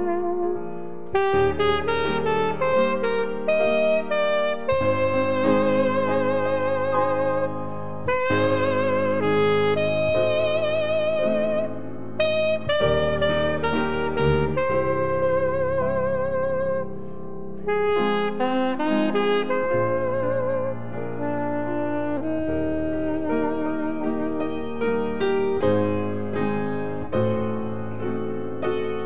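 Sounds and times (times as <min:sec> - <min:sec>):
saxophone slow melody: 0:00.0 - 0:29.0.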